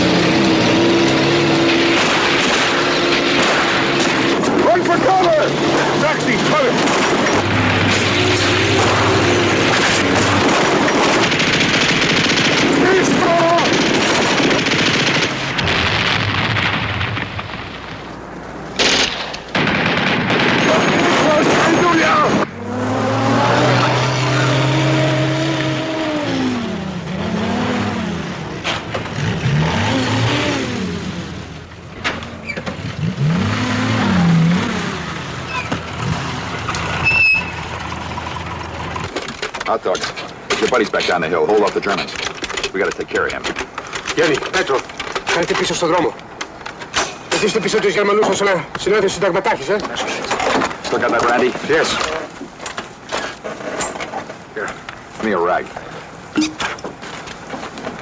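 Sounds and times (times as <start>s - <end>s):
vehicle engine revving: 0.0s - 12.9s, 22.3s - 31.6s, 32.6s - 39.1s.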